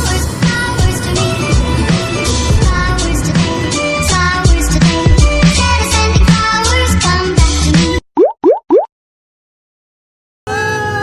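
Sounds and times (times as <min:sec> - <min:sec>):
rising bloop pops: 0:08.2 - 0:08.9.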